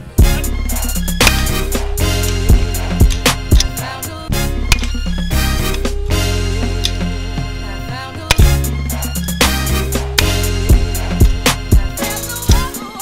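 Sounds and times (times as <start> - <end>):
background music with bass line: 0.0 - 13.0.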